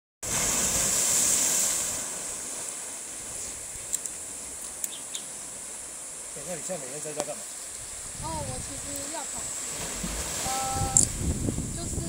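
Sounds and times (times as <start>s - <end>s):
waves breaking against rocks: 0.2s - 12.0s
steady high hiss: 0.3s - 11.9s.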